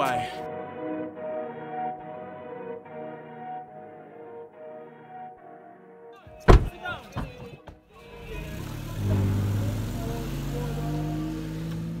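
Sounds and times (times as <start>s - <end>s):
vehicle engine revving: 8.1s - 12.0s.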